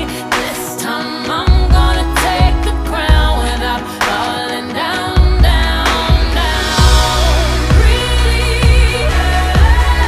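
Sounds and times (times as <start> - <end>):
pop song: 0.0 - 10.0
deep bass hits: 5.2 - 10.0.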